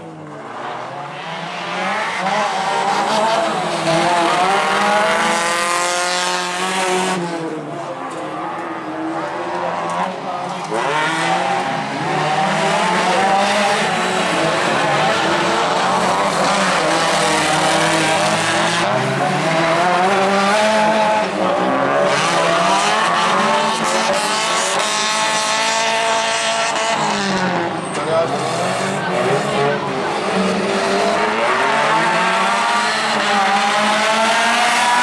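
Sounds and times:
racing car engines revving: 0.0 - 35.0.

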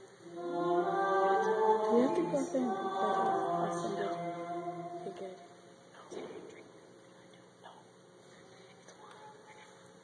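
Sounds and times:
liturgical chant singing: 0.0 - 6.3.

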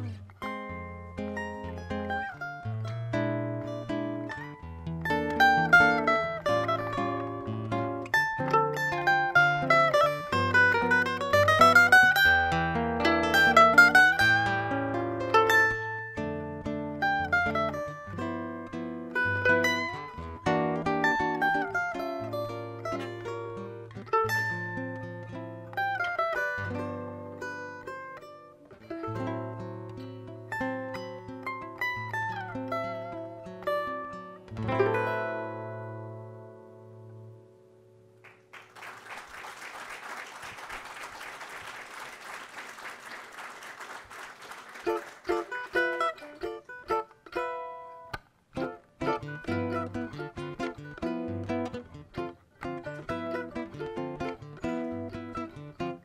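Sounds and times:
cavaquinho and guitar duet: 0.0 - 56.0.

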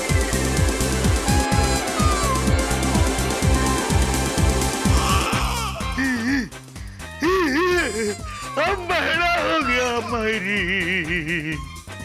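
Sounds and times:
comic background music: 0.0 - 12.0
man whining wail: 4.8 - 6.5, 7.2 - 8.3.

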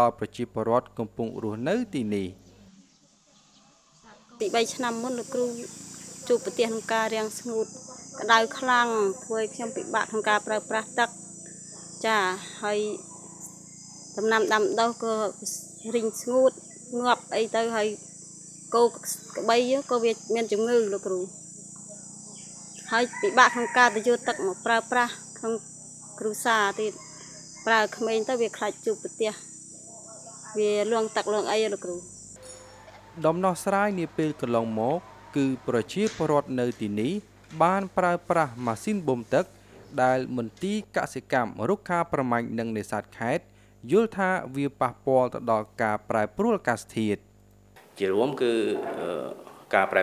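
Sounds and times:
high-pitched insect drone: 3.1 - 47.2
woman speaking: 4.1 - 11.1, 11.8 - 13.0, 14.2 - 18.0, 18.7 - 21.3, 22.8 - 27.0, 27.6 - 29.4, 30.2 - 32.1.

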